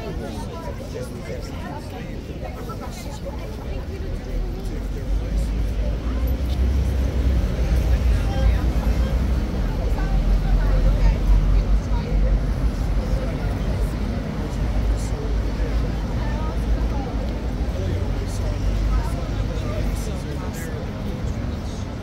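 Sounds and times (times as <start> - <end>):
loud low city rumble: 0.0 - 22.0
tourists chatting: 0.0 - 22.0.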